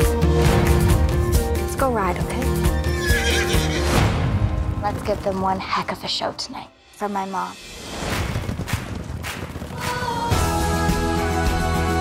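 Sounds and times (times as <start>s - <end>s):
background music: 0.0s - 12.0s
horse whinnying: 2.6s - 4.0s.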